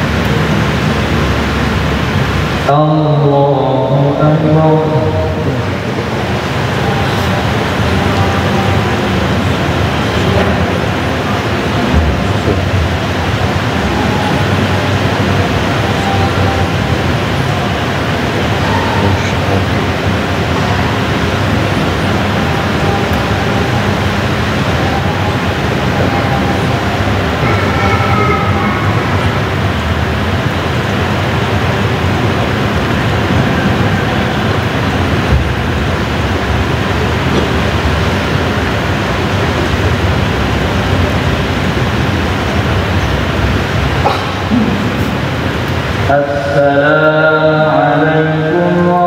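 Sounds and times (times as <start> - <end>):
loud rushing noise: 0.0 - 49.0
faint wavering tone: 13.4 - 19.6, 21.9 - 31.0.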